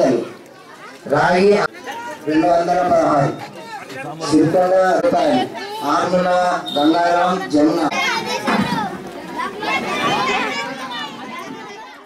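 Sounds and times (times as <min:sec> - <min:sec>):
children's voices: 0:00.0 - 0:02.8, 0:07.4 - 0:12.0
crowd chatter: 0:00.0 - 0:12.0.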